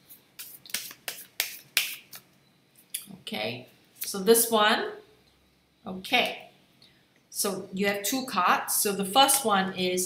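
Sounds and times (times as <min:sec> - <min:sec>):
cards snapping: 0:00.4 - 0:02.3.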